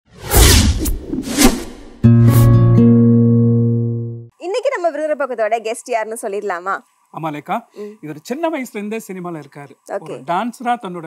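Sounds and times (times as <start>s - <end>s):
whooshes: 0.1s - 2.6s
held musical chord: 2.1s - 4.3s.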